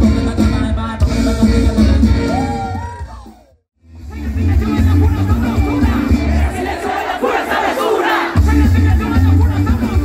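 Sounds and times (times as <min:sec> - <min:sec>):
music with pulsing bass beat: 0:04.0 - 0:06.6, 0:08.4 - 0:10.0
crowd shouting: 0:05.2 - 0:08.7.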